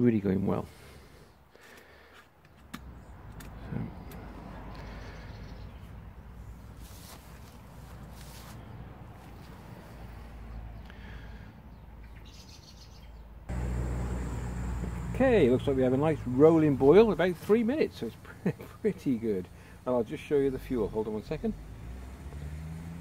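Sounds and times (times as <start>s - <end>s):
birds chirping: 2.8s - 6.9s, 7.7s - 23.0s
camping stove burning: 13.5s - 20.3s
kettle steaming at the boil: 13.5s - 20.3s.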